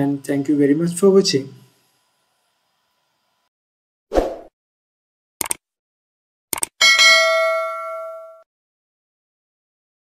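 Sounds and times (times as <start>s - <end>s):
mouse double click: 5.4s - 5.6s, 6.5s - 6.7s
bell ring: 6.8s - 8.5s.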